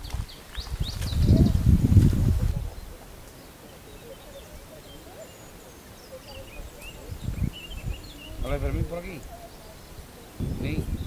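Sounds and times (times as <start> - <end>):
birds chirping: 0.0 - 11.0
faint outdoor background noise: 0.0 - 11.0.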